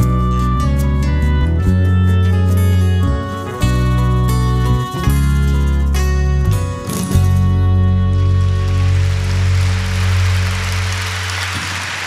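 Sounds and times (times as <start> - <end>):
audience applause: 8.4 - 12.0.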